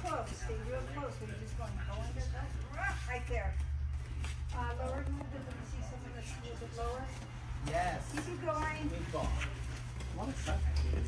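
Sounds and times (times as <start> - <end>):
people talking indistinctly: 0.0 - 11.0
steady low hum: 0.0 - 11.0.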